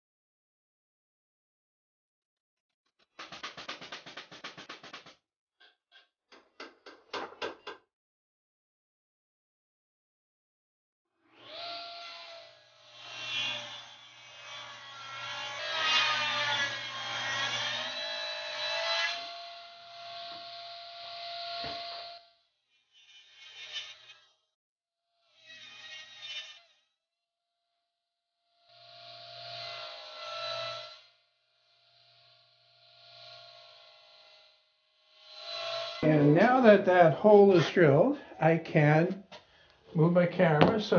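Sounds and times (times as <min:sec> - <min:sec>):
drill bit cutting: 0:15.4 - 0:22.3, 0:28.7 - 0:31.2, 0:33.0 - 0:36.3
drill press motor whine: 0:17.9 - 0:22.5, 0:28.6 - 0:34.6.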